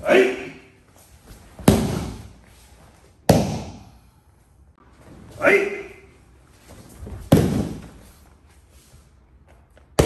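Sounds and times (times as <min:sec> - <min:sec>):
slap on a mat: 0:01.6 - 0:02.3, 0:03.3 - 0:03.9, 0:07.3 - 0:08.0.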